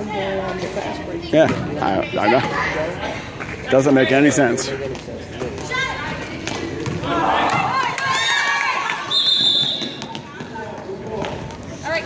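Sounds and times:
basketball bouncing: 6.4s - 7.8s
referee's whistle: 9.1s - 10.1s.

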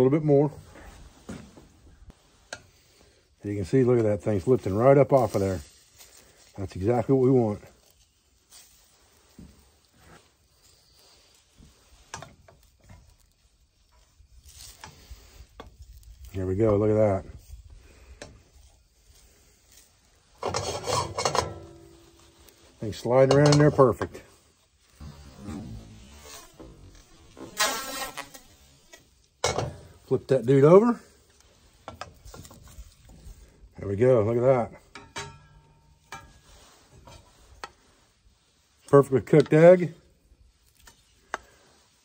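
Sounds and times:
steady frying hiss: 0.0s - 42.0s
metal skillet scraping on grate: 20.2s - 24.3s, 24.9s - 30.0s, 34.9s - 37.9s
spatula scraping metal skillet: 20.4s - 22.3s, 25.0s - 28.7s
sharp metal clank: 35.0s - 36.4s.

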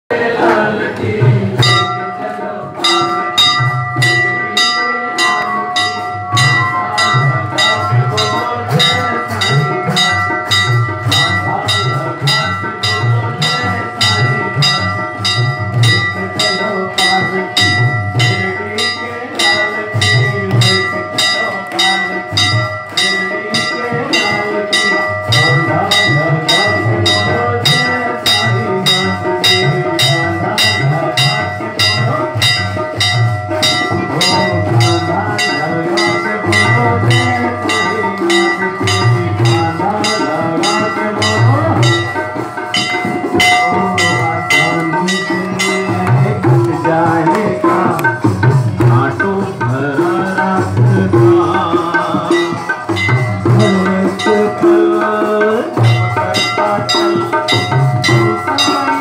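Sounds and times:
pulsing drum beat: 0.1s - 59.0s
bell struck rapidly: 0.5s - 59.0s
sustained metallic ringing: 1.6s - 59.0s.

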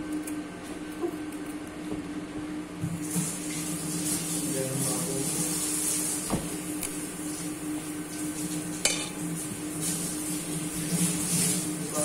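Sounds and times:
kitchen ventilation hum and hiss: 0.0s - 12.0s.

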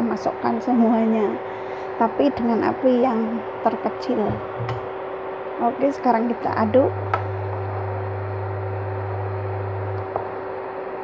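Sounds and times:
cooktop electrical hum: 0.0s - 11.0s
high whine: 6.5s - 10.4s.

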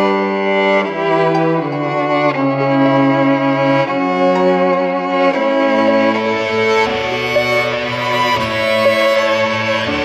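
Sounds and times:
violin quartet playing slow chords: 0.0s - 10.0s.

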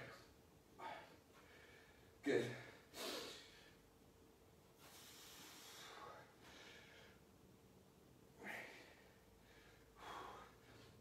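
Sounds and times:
person breathing: 0.8s - 3.9s, 4.8s - 7.3s, 8.4s - 11.0s.

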